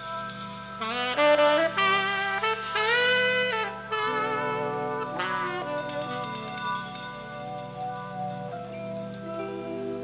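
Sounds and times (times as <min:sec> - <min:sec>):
electric guitar backing: 0:00.0 - 0:10.0
saxophone holding long notes: 0:00.8 - 0:08.3.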